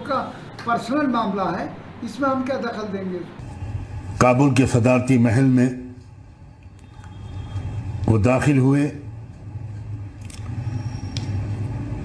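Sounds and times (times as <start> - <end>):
low hum: 3.3 - 12.0.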